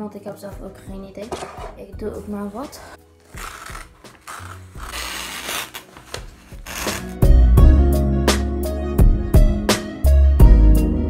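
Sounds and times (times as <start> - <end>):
paper rustling and crinkling: 1.2 - 7.2
scissors cutting paper: 1.3 - 7.3.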